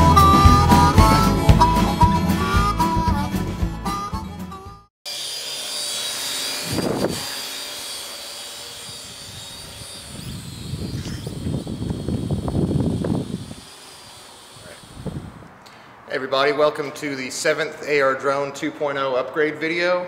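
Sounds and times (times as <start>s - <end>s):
harmonica tune: 0.0s - 4.9s
drone rotors whining: 5.1s - 15.6s.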